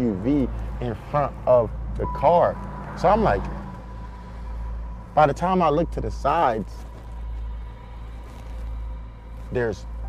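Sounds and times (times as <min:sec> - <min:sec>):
dark drone music: 0:00.0 - 0:10.0.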